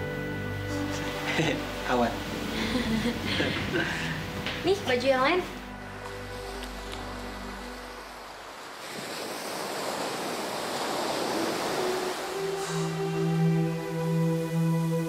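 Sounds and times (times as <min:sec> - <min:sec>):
sustained background music: 0:00.0 - 0:08.8, 0:10.9 - 0:15.0
waves washing up shore: 0:01.1 - 0:15.0.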